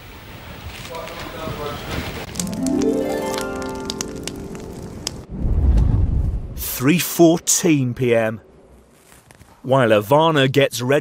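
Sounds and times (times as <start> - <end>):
deep low boom: 5.2 - 6.6.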